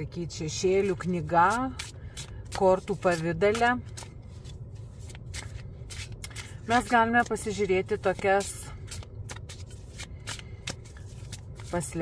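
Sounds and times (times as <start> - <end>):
low steady hum: 0.0 - 12.0
cards shuffled by hand: 1.6 - 12.0.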